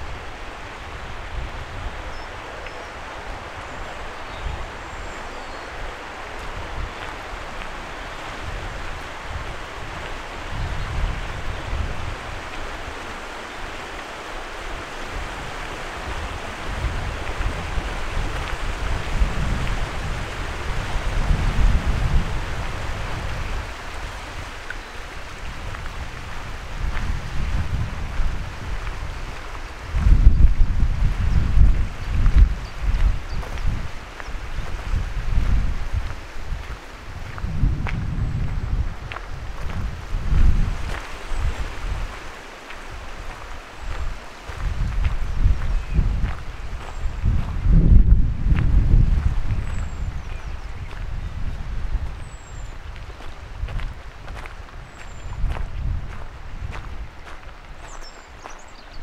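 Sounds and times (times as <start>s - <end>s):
river flowing: 0.0s - 47.7s
wind buffeting microphone: 0.0s - 59.0s.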